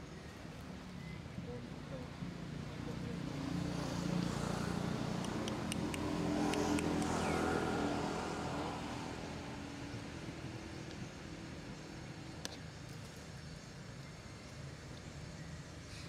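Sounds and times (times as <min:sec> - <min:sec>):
vehicle engine passing by: 0:02.6 - 0:10.2.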